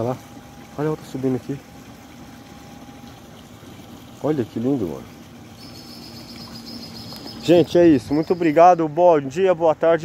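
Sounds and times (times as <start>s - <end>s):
flowing river water: 0.0s - 10.0s.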